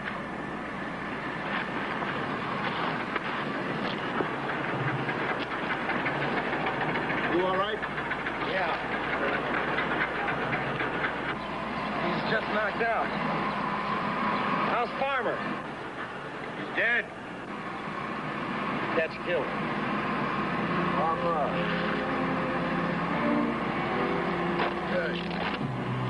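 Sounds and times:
dense background noise: 0.0 - 26.0.

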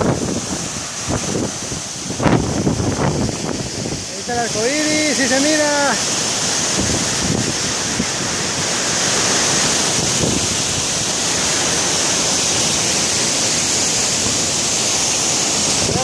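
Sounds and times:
waterfall rushing: 0.0 - 16.0.

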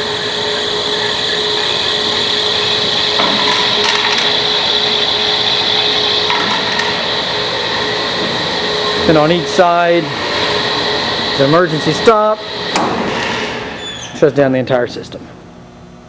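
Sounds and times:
conveyor motors running: 0.0 - 16.0.

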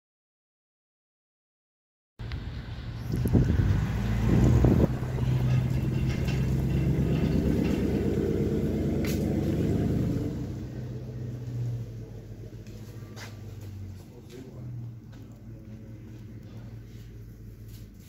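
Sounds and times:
vehicle engine running: 2.2 - 18.0.

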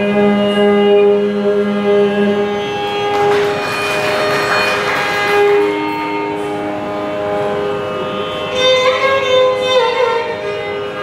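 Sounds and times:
steady drone: 0.0 - 11.0
violin long held notes: 0.0 - 11.0.

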